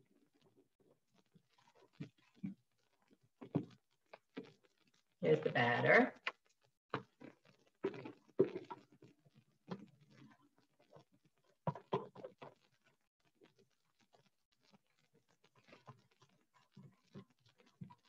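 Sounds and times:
voice-like sound: 5.2 - 6.1.

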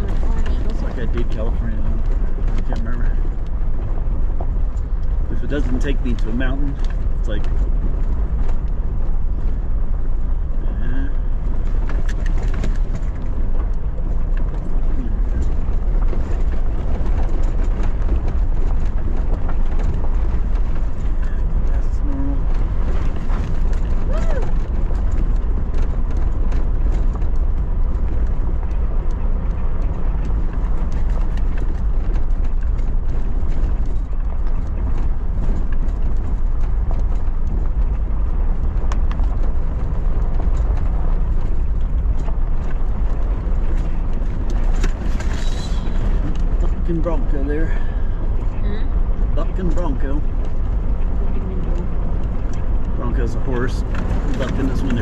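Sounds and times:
gravel crackling: 0.0 - 55.0
vehicle driving on gravel road: 0.0 - 55.0.

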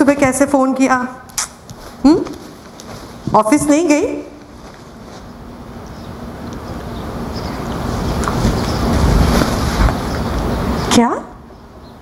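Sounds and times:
loud rushing noise with rumble: 7.1 - 10.9.

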